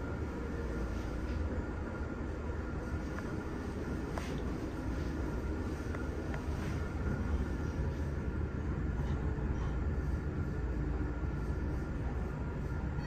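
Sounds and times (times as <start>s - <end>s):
elevator cab low rumble: 0.0s - 13.0s
faint steady tones: 0.0s - 13.0s.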